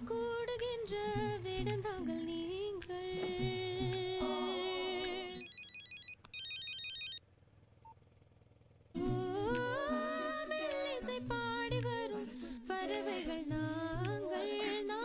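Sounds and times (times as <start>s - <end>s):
film song with voices: 0.0s - 5.5s, 9.0s - 15.0s
mobile phone ringtone trill: 5.4s - 7.2s.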